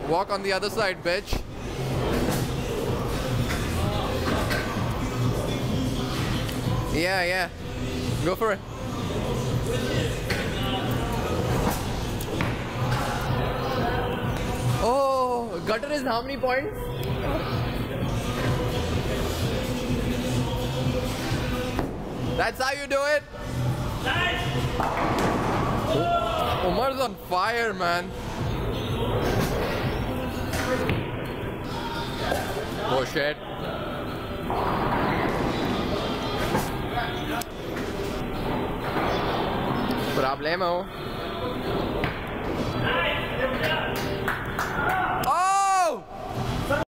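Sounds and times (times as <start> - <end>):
background chatter: 0.0 - 46.8.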